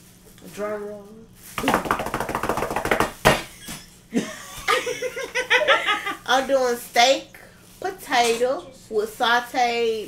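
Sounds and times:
hands drumming on a table: 1.6s - 3.5s
people laughing: 4.1s - 6.2s.

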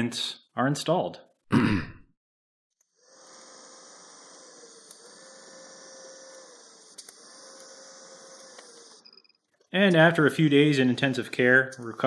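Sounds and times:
welding arc buzzing: 2.7s - 9.7s.

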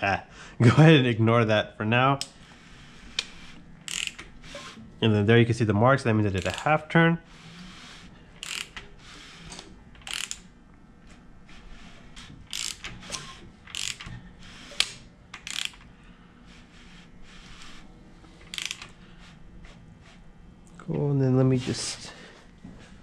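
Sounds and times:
ratchet wrench clicking: 3.9s - 4.7s, 6.4s - 6.8s, 8.4s - 8.8s, 10.0s - 10.5s, 12.5s - 12.9s, 13.7s - 14.1s, 14.7s - 15.9s, 18.5s - 19.0s.

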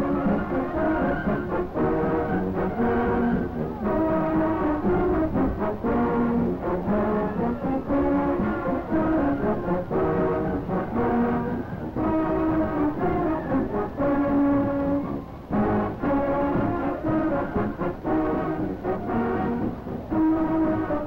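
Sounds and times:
brass long chords: 0.0s - 21.0s
marching band playing: 0.0s - 21.0s.

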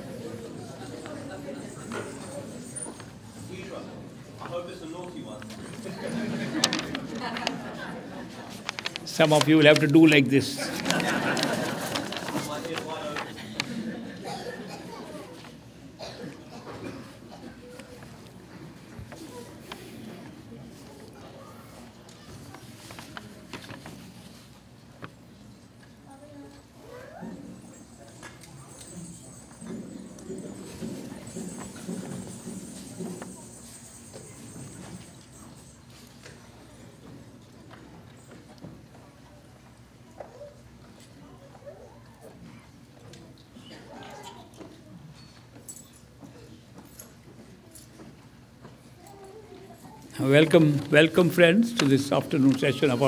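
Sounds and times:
audience laughing: 5.8s - 8.7s, 10.6s - 12.5s.

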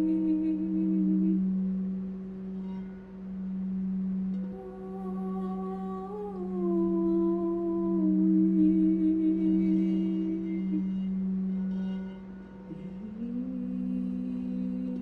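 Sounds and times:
singing bowl sustained tone: 0.0s - 15.0s.

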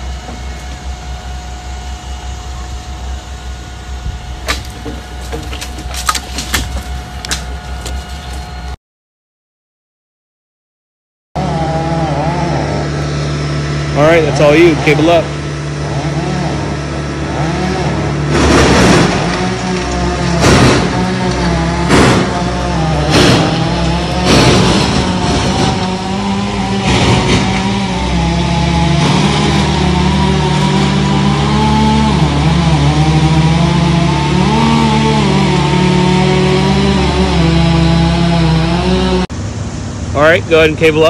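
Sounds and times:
crane engine running: 0.0s - 8.8s, 11.4s - 41.0s
sharp knocks or cracks: 4.4s - 7.5s, 18.3s - 22.4s.

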